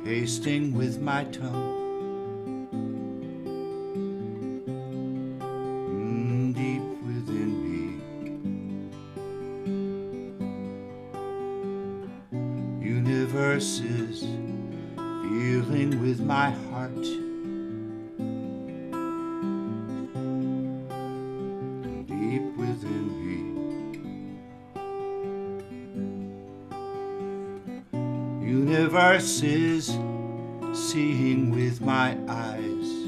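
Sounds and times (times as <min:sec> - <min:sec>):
acoustic guitar playing: 0:00.0 - 0:33.0.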